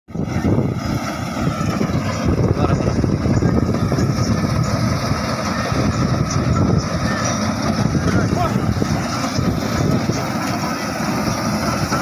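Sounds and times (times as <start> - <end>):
combine harvester engine running: 0.1 - 12.0
voices talking: 0.4 - 12.0.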